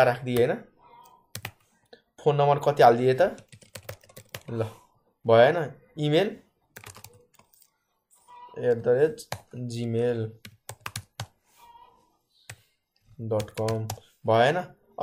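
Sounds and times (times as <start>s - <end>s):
person speaking: 0.0s - 14.8s
computer keyboard typing: 1.3s - 1.7s, 3.3s - 4.5s, 6.7s - 7.7s, 8.7s - 9.6s, 10.4s - 11.4s, 12.5s - 14.0s.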